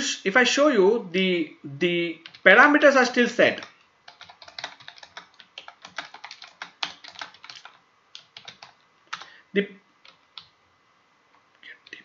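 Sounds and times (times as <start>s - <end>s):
typing on computer keyboard: 2.2s - 2.5s, 3.6s - 9.3s, 10.0s - 10.5s.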